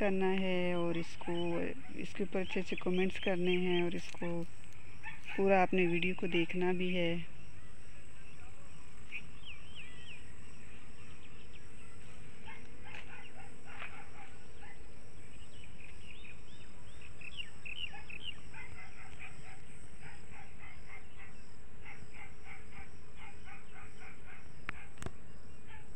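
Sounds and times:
small birds chirping: 0.0s - 25.9s.

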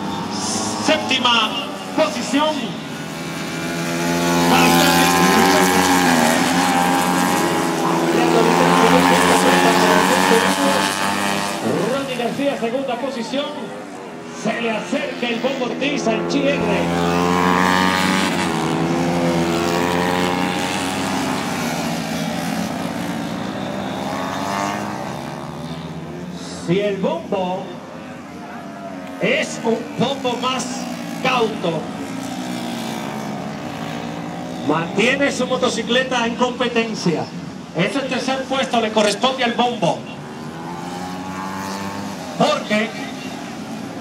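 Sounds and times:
racing motorcycles passing: 0.0s - 44.0s.

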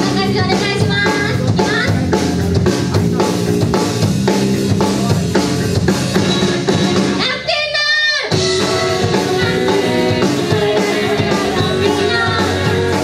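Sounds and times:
drum kit beat: 0.0s - 13.0s
live rock band playing: 0.0s - 13.0s.

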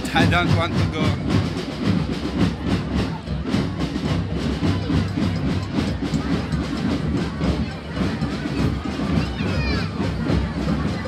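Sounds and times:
crowd noise: 0.0s - 11.0s
procession drums beating: 0.0s - 11.0s.

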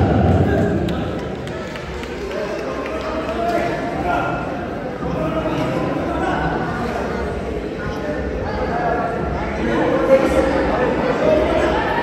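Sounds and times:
spectators calling out and talking: 0.0s - 12.0s.

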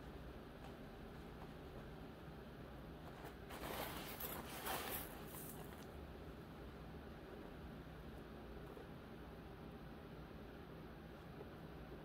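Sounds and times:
glass beads rustling in hand: 3.5s - 5.8s.

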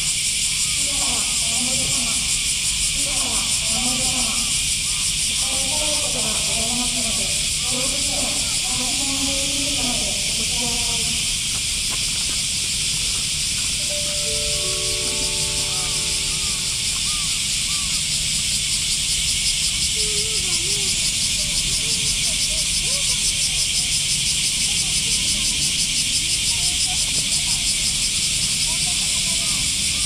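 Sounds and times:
cicadas buzzing: 0.0s - 30.0s.

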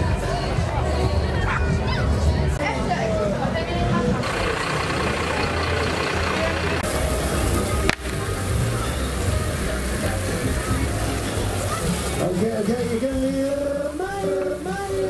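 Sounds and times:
crowd voices: 0.0s - 15.0s
steady rushing noise: 4.0s - 15.0s
fire hose spraying water: 4.2s - 15.0s.

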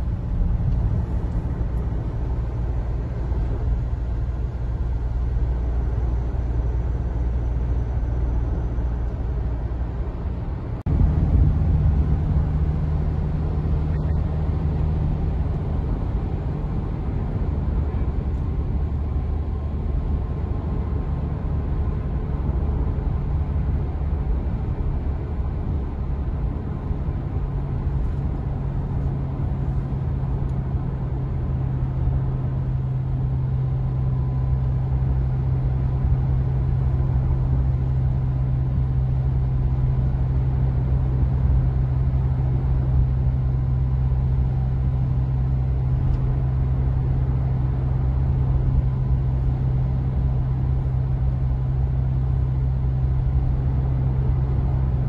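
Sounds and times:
car cabin road drone: 0.0s - 55.0s.

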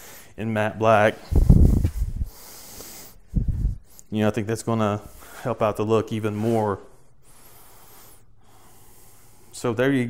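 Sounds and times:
faint breath: 0.0s - 0.4s, 1.2s - 4.1s, 6.4s - 9.6s
low steady room tone: 0.0s - 10.0s.

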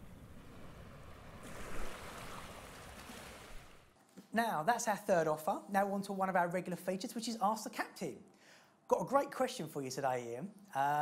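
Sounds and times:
sea water rushing: 0.0s - 4.0s.

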